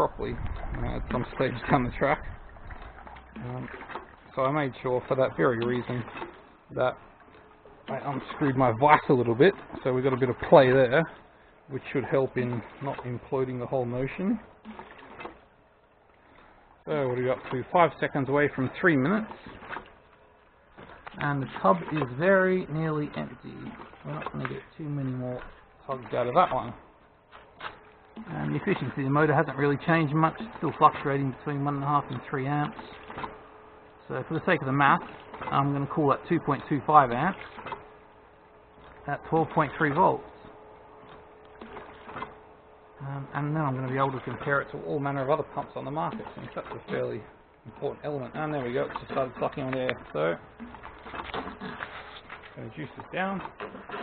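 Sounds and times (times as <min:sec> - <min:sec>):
faint small motor running: 0:00.0 - 0:54.0.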